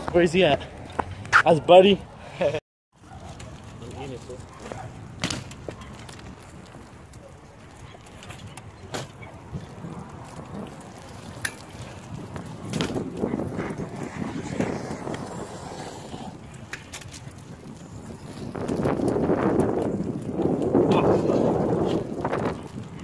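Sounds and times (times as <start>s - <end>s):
bike tyres rolling on asphalt: 0.0s - 23.0s
wind on microphone: 9.3s - 23.0s.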